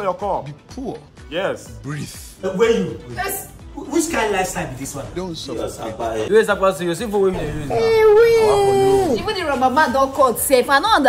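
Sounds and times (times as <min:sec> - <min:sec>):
person wailing: 0:07.4 - 0:09.3.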